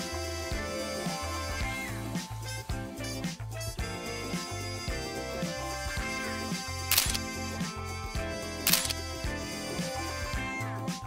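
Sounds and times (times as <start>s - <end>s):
upbeat background music: 0.0s - 11.0s
sharp clicks: 6.9s - 7.2s, 8.7s - 9.0s.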